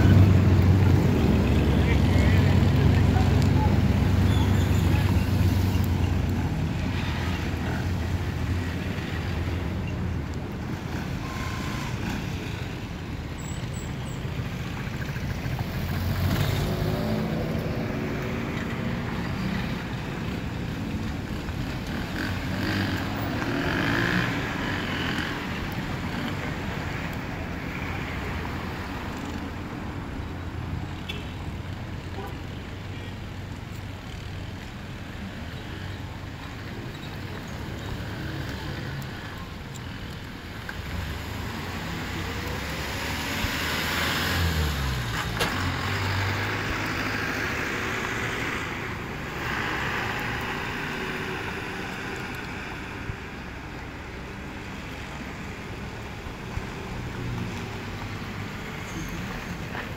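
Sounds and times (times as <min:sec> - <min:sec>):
truck passing: 0:00.0 - 0:30.8, 0:40.2 - 0:59.9
cars passing: 0:00.0 - 0:59.9.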